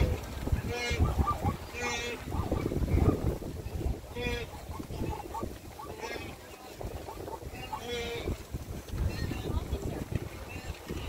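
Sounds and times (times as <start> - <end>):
hooves rumbling over dry grass: 0.0 - 11.0
wind on microphone: 0.0 - 11.0.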